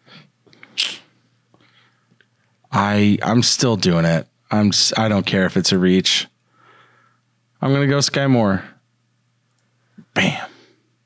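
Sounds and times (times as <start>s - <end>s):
faint breath: 6.5s - 7.3s.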